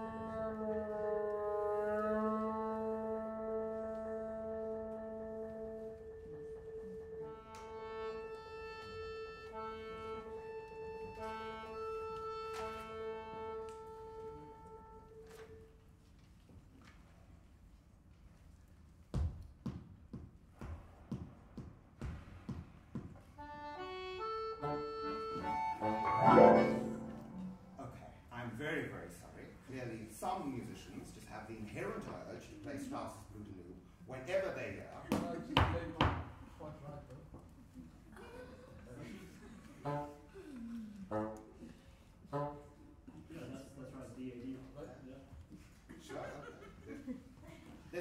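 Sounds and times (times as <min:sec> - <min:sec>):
accordion chords: 0:07.0 - 0:15.2, 0:23.4 - 0:28.0
marimba notes: 0:24.8 - 0:27.8.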